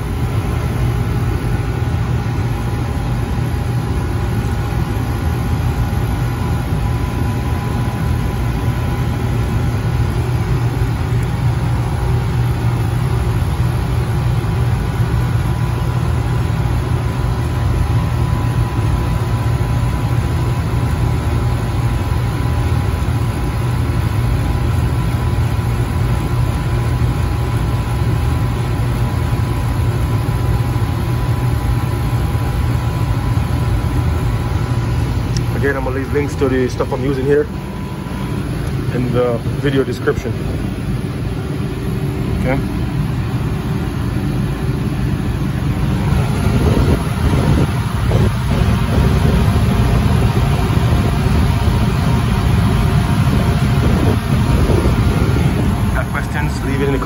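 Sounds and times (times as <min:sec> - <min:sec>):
air conditioner compressor humming: 0:00.0 - 0:57.0.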